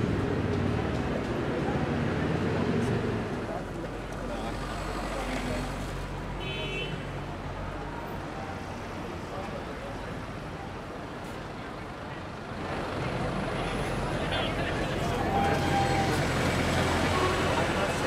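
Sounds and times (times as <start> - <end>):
bus engine passing close: 0.0 - 6.3, 7.3 - 18.0
city street traffic: 0.0 - 18.0
voices of passers-by: 0.0 - 18.0.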